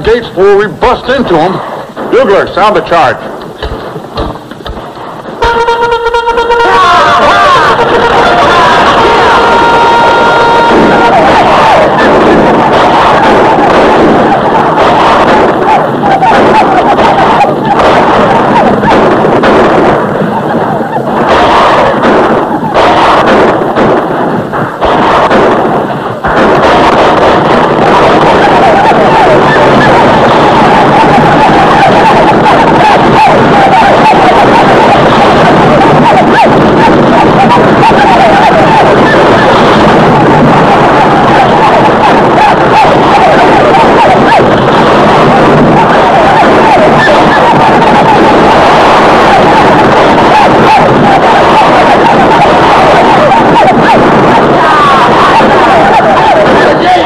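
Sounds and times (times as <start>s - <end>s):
gunfire: 0.0s - 57.0s
riders yelling: 5.4s - 19.0s, 27.9s - 57.0s.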